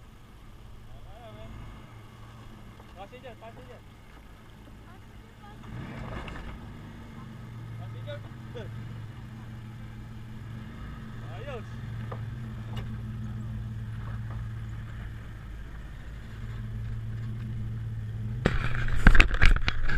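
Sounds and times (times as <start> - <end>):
suv engine running at low revs: 0.0 - 19.9.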